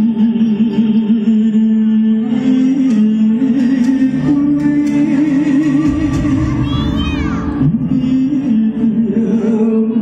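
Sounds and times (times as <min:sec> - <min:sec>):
man singing ballad through pa: 0:00.0 - 0:10.0.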